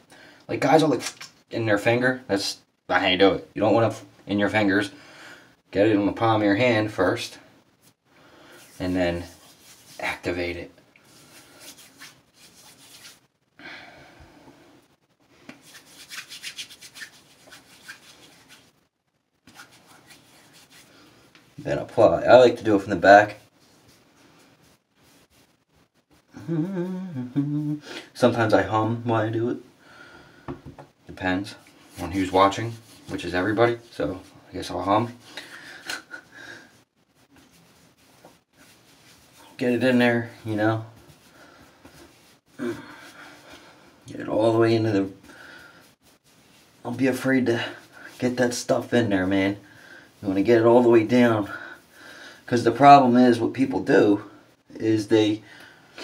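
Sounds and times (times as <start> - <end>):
faint breathing: 4.9 - 5.6, 8.1 - 8.8, 13.6 - 15.4, 29.8 - 30.6, 45.2 - 46.0, 51.5 - 52.5
palms rubbing together: 7.8 - 13.3, 15.4 - 21.6, 23.3 - 26.9, 31.4 - 43.8, 44.4 - 49.4.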